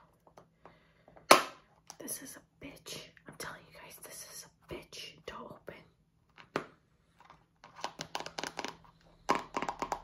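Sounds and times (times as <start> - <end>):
fingers tapping plastic can: 8.0 - 10.0.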